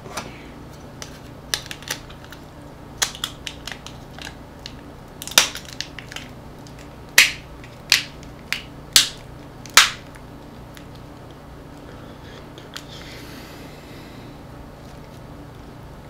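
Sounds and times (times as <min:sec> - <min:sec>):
plastic casing cracking and snapping: 0:01.0 - 0:02.4, 0:03.0 - 0:11.3.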